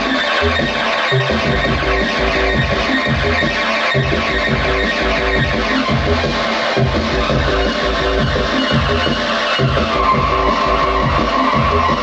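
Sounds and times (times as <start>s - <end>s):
squealing buzzing electronic tone: 0.0s - 12.0s
steady electronic beat: 0.0s - 12.0s.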